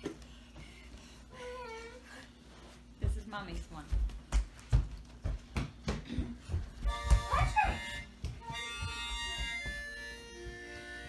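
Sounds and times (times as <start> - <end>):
harmonica playing held chord: 6.8 - 11.0.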